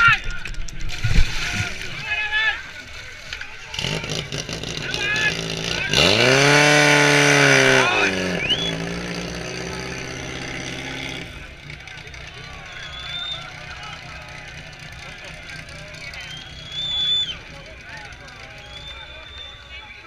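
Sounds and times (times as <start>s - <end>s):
pump engine running: 2.8s - 18.8s.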